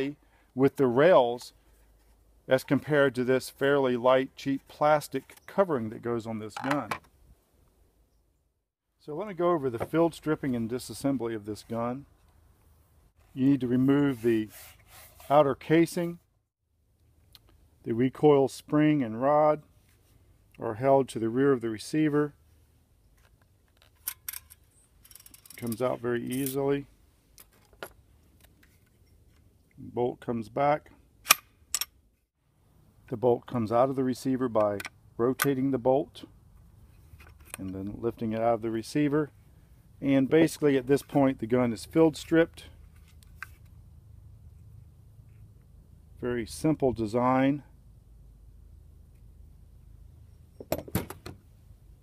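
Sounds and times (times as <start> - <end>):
rifle bolt metallic clicks: 31.2 - 32.0.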